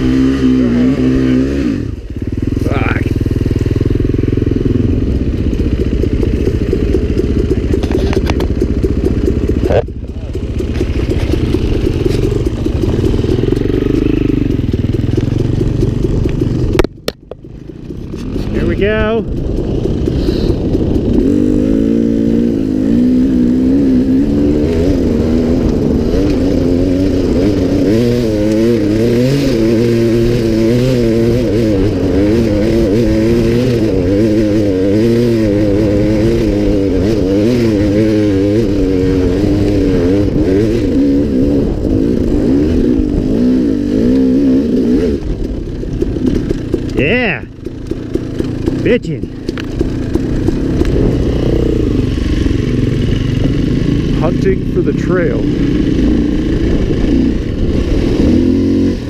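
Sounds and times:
dirt bike engine revving high: 0.0s - 16.9s, 18.2s - 59.0s.

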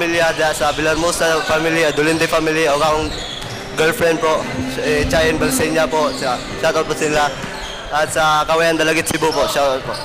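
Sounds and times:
man speaking into a microphone: 0.0s - 10.0s
basketballs bouncing on wooden floor: 7.3s - 8.2s.

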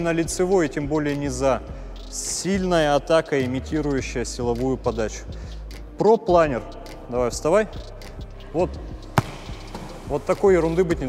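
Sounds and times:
volleyball smacked by hand: 9.2s - 10.0s.

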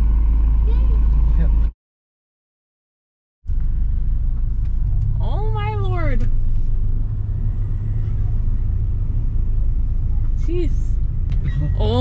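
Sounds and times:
loud low rumble: 3.5s - 12.0s.

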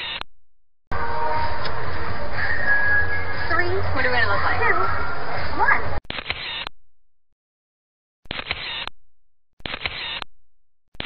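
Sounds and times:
camera shutter clicks: 9.6s - 10.2s.

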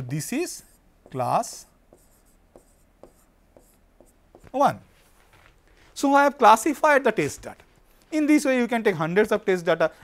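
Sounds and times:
stylus scratching on screen: 0.0s - 5.2s.

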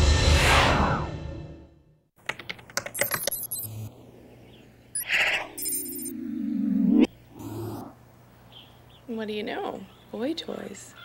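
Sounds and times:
keyboard clicks: 2.2s - 3.7s
high electronic computer bleeps: 3.0s - 3.9s, 5.0s - 6.7s.

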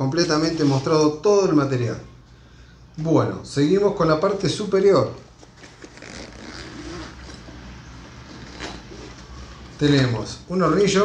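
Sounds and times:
bag zipper pulled open: 5.6s - 9.6s.

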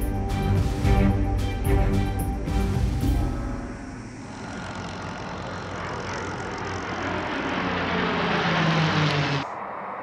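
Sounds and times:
aircraft engine rushing: 0.0s - 10.0s.

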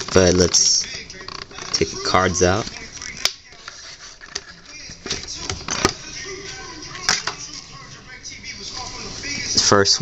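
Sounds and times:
faint music: 0.0s - 10.0s
plastic blister packaging crinkling: 0.0s - 10.0s.

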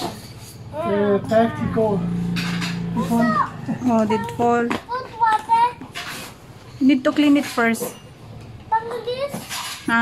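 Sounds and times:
people speaking: 3.0s - 5.7s
child speaking: 3.0s - 5.9s, 8.7s - 10.0s.

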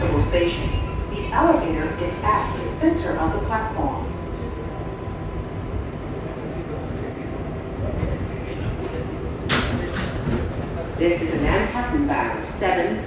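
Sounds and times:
faint high whine: 0.0s - 9.4s
subway car rumble: 0.0s - 13.0s.

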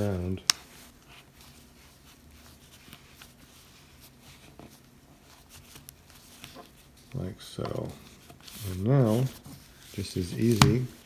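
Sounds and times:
handling ear pad: 0.0s - 11.0s
low steady hum: 0.0s - 11.0s.

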